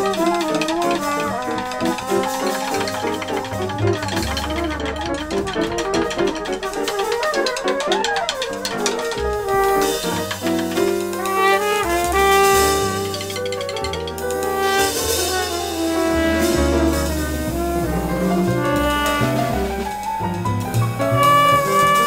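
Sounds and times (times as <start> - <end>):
piano: 0.0 - 22.0
trumpet: 0.0 - 22.0
upright bass: 2.0 - 6.9, 15.0 - 22.0.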